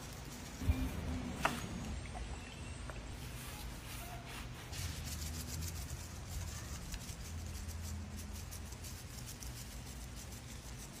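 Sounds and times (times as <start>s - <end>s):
steady low hum: 0.0s - 6.3s.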